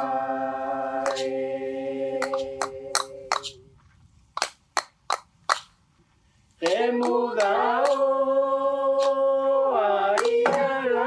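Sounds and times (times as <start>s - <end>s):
group of voices singing: 0.0s - 3.7s, 6.6s - 11.0s.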